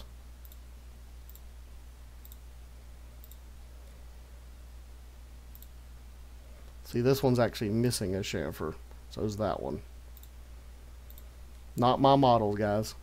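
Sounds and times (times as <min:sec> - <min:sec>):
low electrical hum: 0:00.0 - 0:13.0
faint computer mouse clicks: 0:02.2 - 0:02.4, 0:03.2 - 0:04.0, 0:05.5 - 0:05.8, 0:10.1 - 0:10.4, 0:11.1 - 0:11.6.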